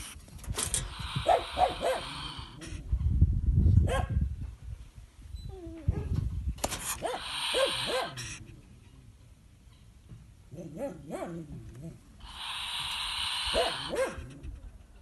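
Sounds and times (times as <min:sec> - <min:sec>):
polecat hissing and calling: 0:00.8 - 0:02.8, 0:06.9 - 0:08.7, 0:12.2 - 0:14.5.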